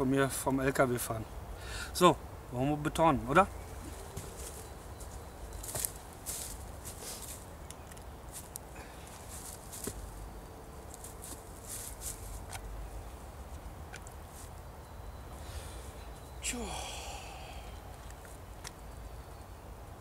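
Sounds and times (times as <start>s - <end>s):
footsteps in dry leaves: 3.6s - 7.6s, 8.3s - 13.2s.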